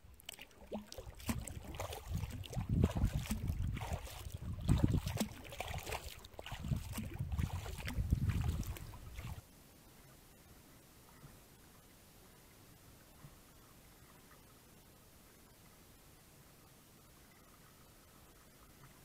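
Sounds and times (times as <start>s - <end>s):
paddle splashing in water: 0.0s - 9.4s
wind rumbling on microphone: 1.2s - 9.4s
faint steady hiss: 9.3s - 19.0s.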